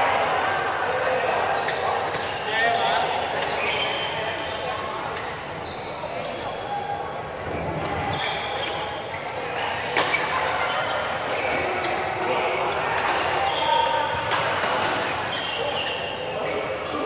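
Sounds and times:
shoes squeaking on court: 1.6s - 4.7s, 5.6s - 6.4s, 7.4s - 14.0s, 14.8s - 17.0s.

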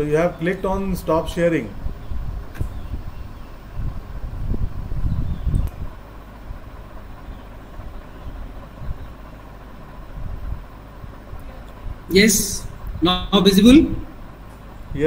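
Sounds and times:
low rumbling: 0.0s - 15.0s
faint clicks: 5.5s - 5.8s.

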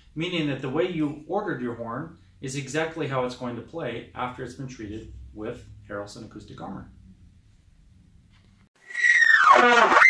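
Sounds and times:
trumpet sliding down: 8.8s - 10.0s.

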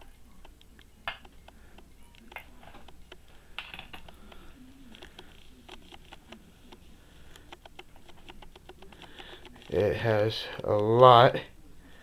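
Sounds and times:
quick clicks and light taps: 4.0s - 9.8s.

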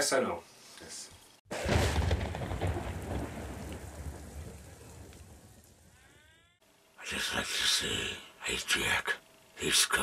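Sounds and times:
rain hissing: 0.6s - 6.1s
thunder rumbling: 1.5s - 6.0s.

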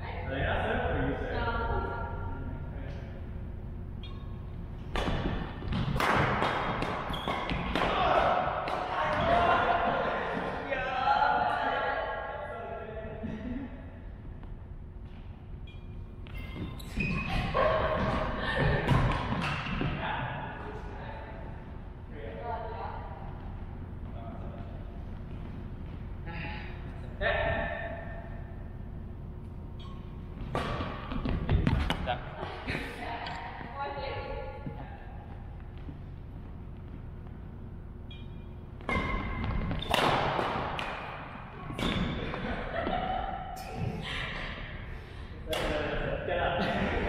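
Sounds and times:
racket hitting shuttlecock: 4.9s - 9.4s, 18.8s - 19.9s, 29.8s - 32.0s, 38.8s - 42.4s.

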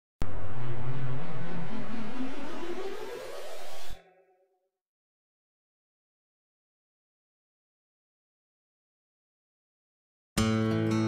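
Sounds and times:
whoosh with rising tone: 0.2s - 4.3s.

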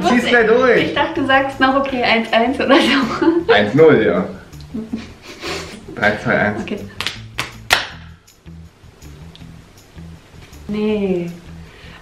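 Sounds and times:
background music: 0.0s - 12.0s
fists slapping open palms: 6.9s - 8.2s.

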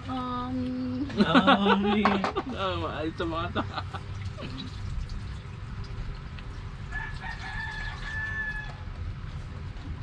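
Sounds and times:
rooster crowing: 6.9s - 9.0s.

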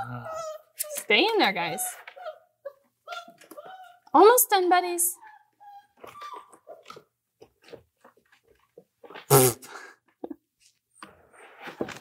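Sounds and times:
puppy whining: 0.0s - 4.2s, 5.2s - 7.1s.

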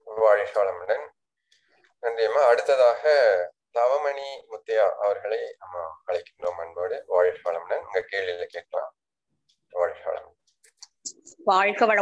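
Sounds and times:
faint clicks: 1.4s - 2.0s.

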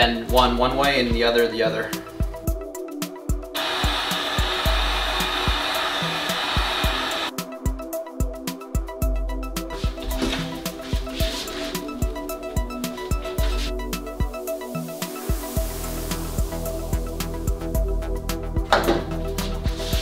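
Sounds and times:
background music with beat: 0.0s - 20.0s
heat gun blowing: 3.6s - 7.3s, 13.2s - 17.5s.

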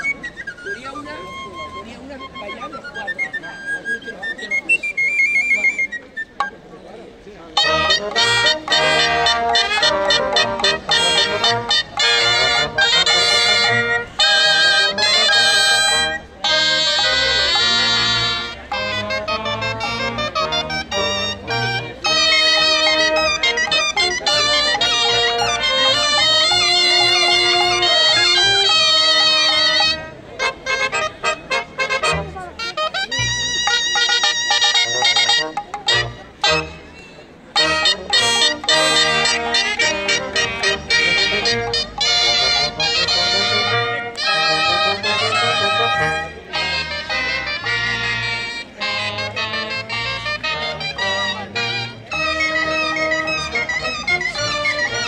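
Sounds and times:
solo flute melody: 0.0s - 6.8s, 7.6s - 36.9s, 37.6s - 55.0s
wind and brass band playing dance tune: 7.6s - 55.0s.

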